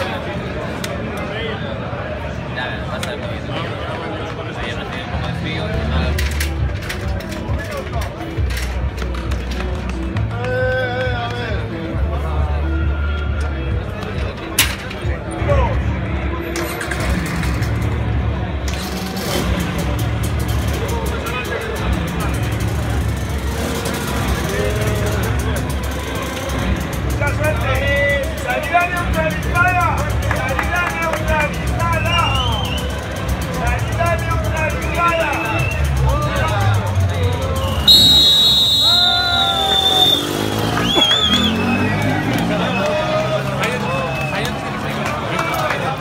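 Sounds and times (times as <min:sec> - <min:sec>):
music: 0:05.2 - 0:46.0
loud steady horn: 0:37.9 - 0:40.2.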